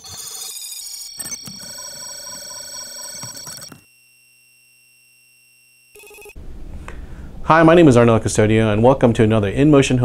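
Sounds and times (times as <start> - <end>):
faint steady electronic tones: 0.0 - 6.4
low background hum: 6.0 - 10.0.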